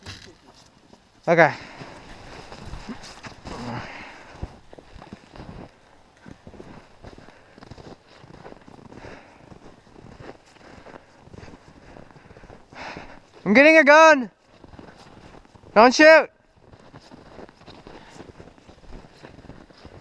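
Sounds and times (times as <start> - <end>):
footsteps crunching through snow: 0.0 - 13.6, 14.4 - 20.0.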